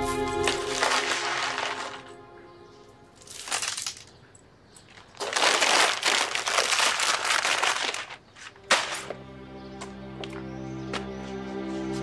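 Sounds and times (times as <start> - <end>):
paper bag crinkling: 0.0 - 2.2, 3.2 - 4.1, 4.9 - 9.1
background music: 0.0 - 3.2, 8.6 - 12.0
paper bag sharp crack: 0.4 - 2.1, 3.2 - 4.1, 4.9 - 9.1.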